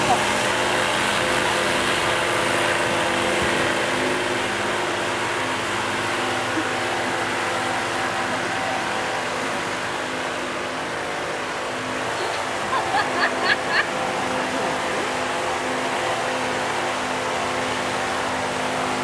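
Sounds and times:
wind machine motor drone: 0.0 - 19.0.

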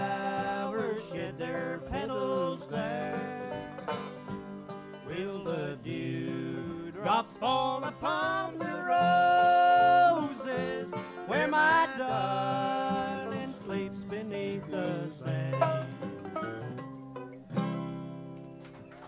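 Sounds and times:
banjo playing: 0.0 - 18.4
acoustic guitar playing: 0.0 - 19.0
person singing: 5.1 - 15.8.

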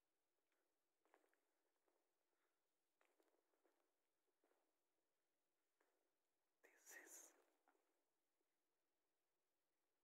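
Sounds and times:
soft whispery breath: 6.7 - 7.5.

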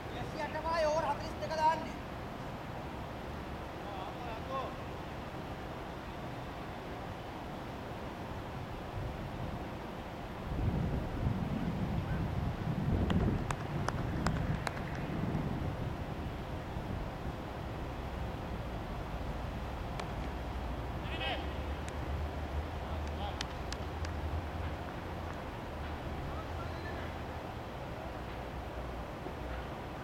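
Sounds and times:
faint distant voices: 25.9 - 29.8.

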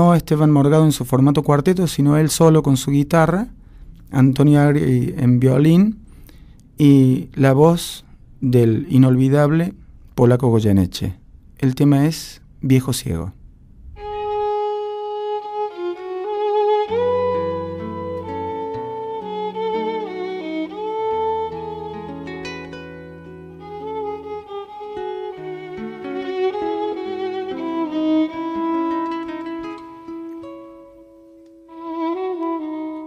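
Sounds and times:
violin melody with vibrato: 14.0 - 31.1, 31.7 - 33.0
guitar accompaniment: 14.0 - 33.0.

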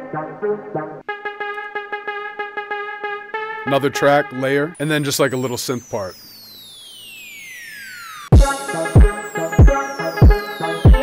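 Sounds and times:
synthesizer tone sweeping down: 4.8 - 11.0.

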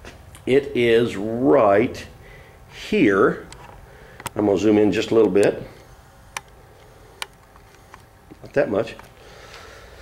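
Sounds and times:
faint room hiss: 0.0 - 10.0.

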